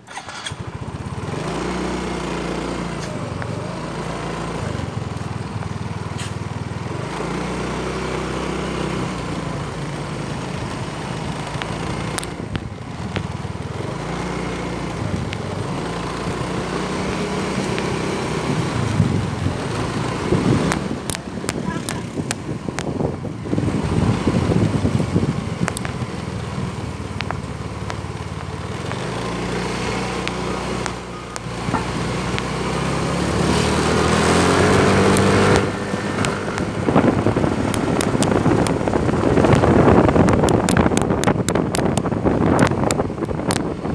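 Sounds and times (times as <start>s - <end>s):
motorbike engine revving: 0.0s - 43.9s
wind gusts on microphone: 11.2s - 27.5s, 28.7s - 43.9s.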